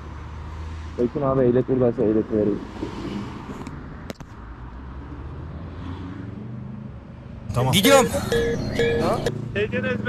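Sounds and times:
traffic engines humming: 0.0s - 10.0s.

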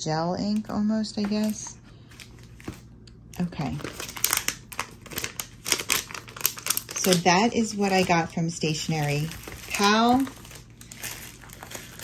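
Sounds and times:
plastic packaging crinkling: 0.5s - 12.0s.

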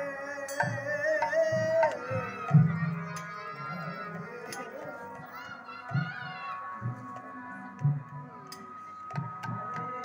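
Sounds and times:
hand drums: 0.0s - 10.0s
harmonium sustained notes: 1.9s - 10.0s.

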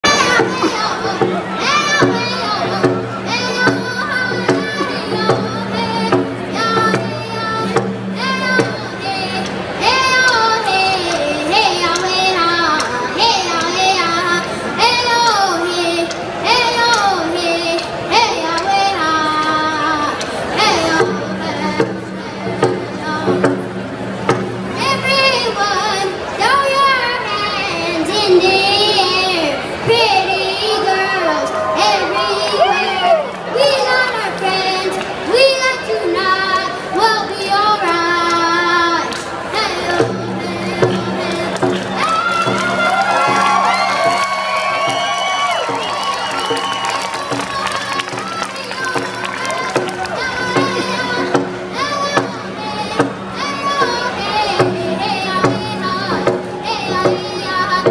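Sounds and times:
stadium crowd cheering: 0.0s - 17.4s, 29.3s - 35.4s, 40.8s - 57.9s.

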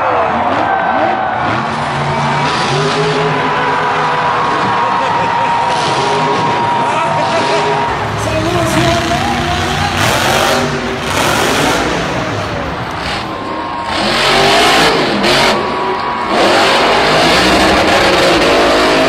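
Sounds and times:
monster truck engines revving: 0.0s - 19.0s.

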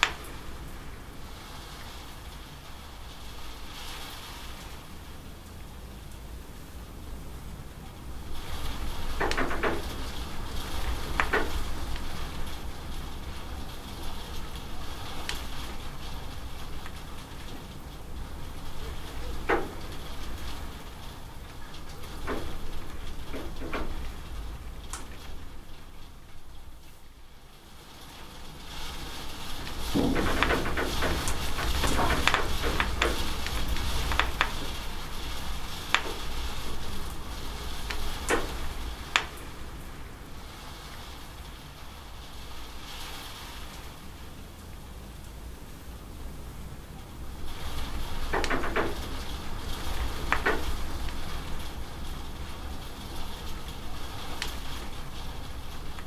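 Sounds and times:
water dripping off roof edge: 0.0s - 27.4s, 28.2s - 45.6s, 46.7s - 56.0s
steady rain: 0.0s - 56.0s.

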